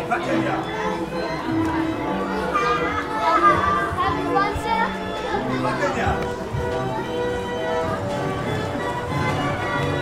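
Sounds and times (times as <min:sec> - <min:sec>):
carousel music: 0:00.0 - 0:10.0
children chattering: 0:00.0 - 0:10.0.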